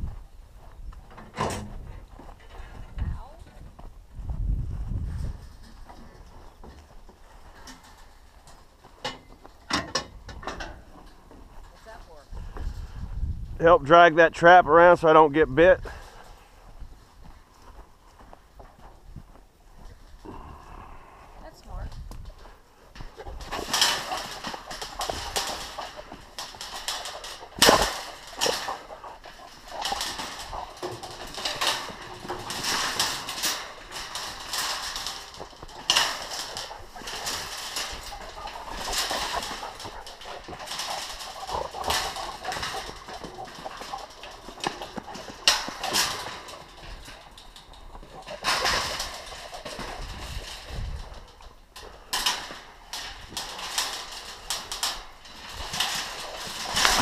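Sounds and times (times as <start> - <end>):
metal cage scraping and rattling: 1.1 - 3.4, 5.1 - 13.1, 22.2 - 57.0.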